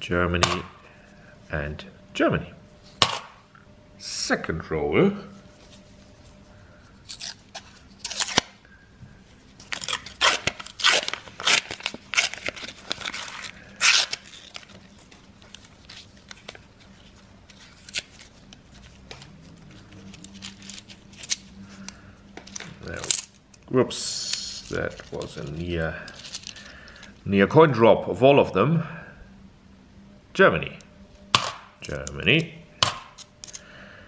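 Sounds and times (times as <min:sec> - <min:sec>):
paper wrapper tearing: 0:07.0 - 0:08.6, 0:09.6 - 0:21.5
scissors cutting paper: 0:07.1 - 0:08.5, 0:09.7 - 0:14.8, 0:15.5 - 0:19.0.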